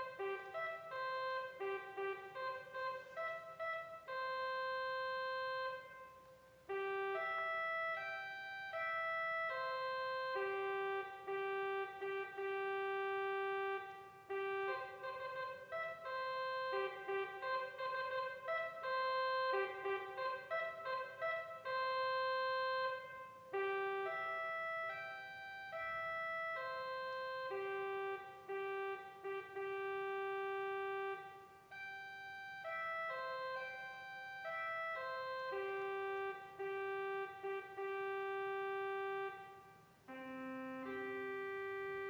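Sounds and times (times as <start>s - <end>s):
slow organ music: 0.0s - 42.0s.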